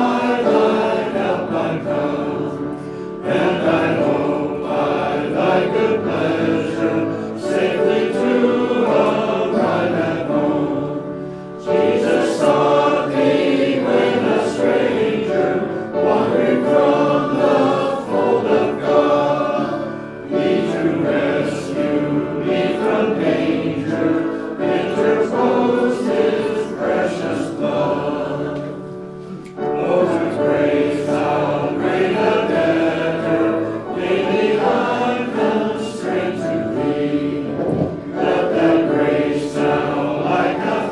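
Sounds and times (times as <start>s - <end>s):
congregation singing a hymn: 0.0s - 40.9s.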